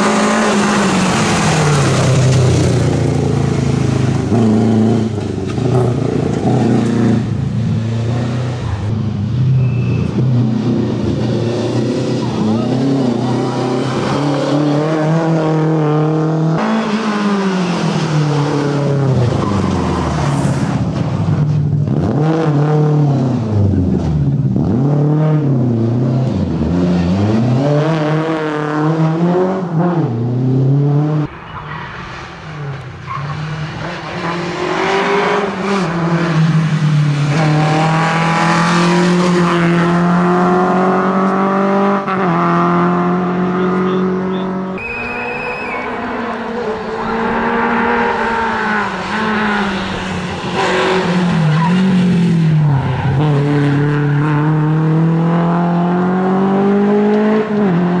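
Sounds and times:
rally car engine revving: 0.0s - 31.4s, 32.1s - 58.0s.

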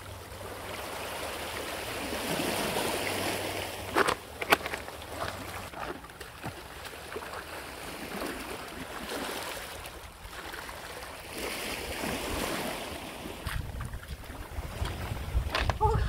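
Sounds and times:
small waves lapping on pebbles: 0.0s - 15.7s
wind rumbling on microphone: 11.8s - 16.0s
person speaking: 15.7s - 16.0s.

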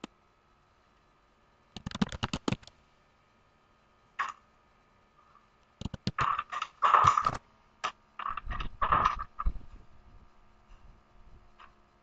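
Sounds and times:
computer keyboard typing: 1.8s - 2.7s, 5.8s - 6.4s.

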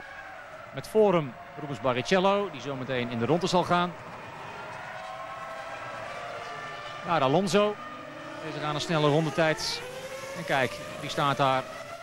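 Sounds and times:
racing car engine at high revs: 2.5s - 12.0s.

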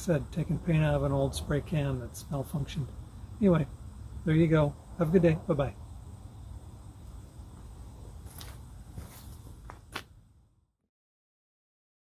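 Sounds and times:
low outdoor rumble: 0.0s - 10.8s.

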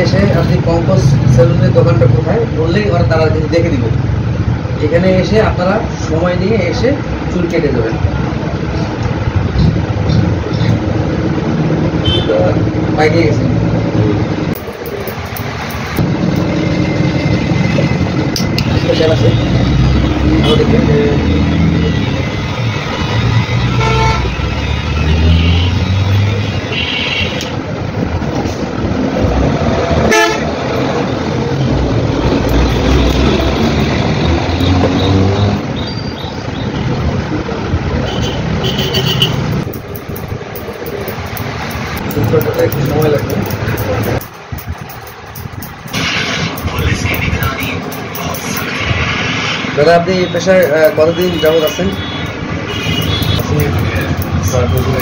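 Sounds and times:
road traffic: 0.0s - 55.0s
vehicle horns tooting: 12.0s - 12.5s, 20.4s - 20.8s, 21.4s - 27.6s, 30.1s - 30.5s, 32.8s - 37.0s, 38.0s - 39.6s, 50.2s - 55.0s
people's voices: 45.9s - 49.1s, 53.0s - 55.0s.

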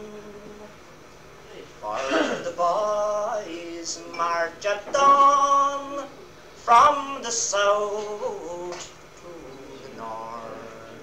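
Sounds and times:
man singing unaccompanied: 0.0s - 0.7s, 1.8s - 11.0s
low steady hum: 0.0s - 11.0s
tape hiss: 0.0s - 11.0s.

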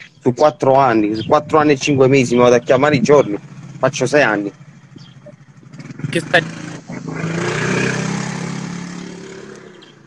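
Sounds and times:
vehicle engine passing by: 1.8s - 10.0s.

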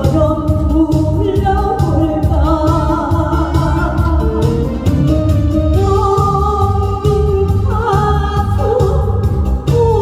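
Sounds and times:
backing music with steady beat: 0.0s - 10.0s
woman singing into microphone: 0.0s - 10.0s.

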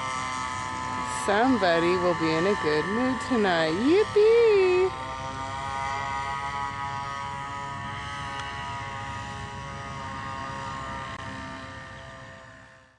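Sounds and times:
paramotor engine droning: 0.0s - 12.9s.

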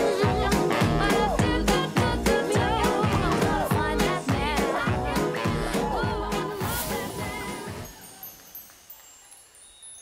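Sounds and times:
high tinkling chimes: 6.8s - 10.0s.

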